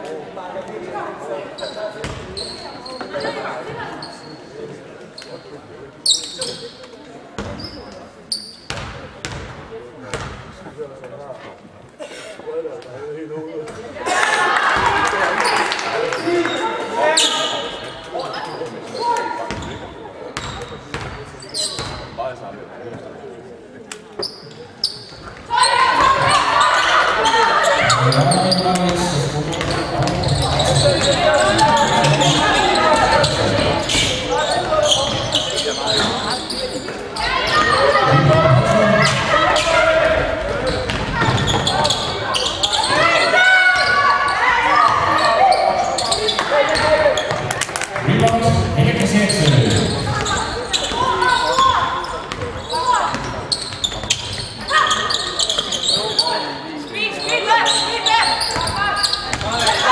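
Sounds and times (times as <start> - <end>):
echoing voices of players and spectators: 0.0 - 59.9
ball bouncing on wooden court: 40.8 - 41.7, 52.3 - 53.3, 58.6 - 59.5.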